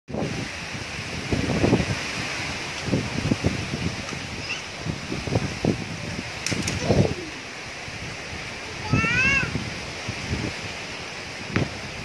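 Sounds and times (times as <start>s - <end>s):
leaves rustling: 0.1s - 12.0s
wind buffeting microphone: 0.1s - 12.0s
wind gusts through trees: 0.1s - 12.0s.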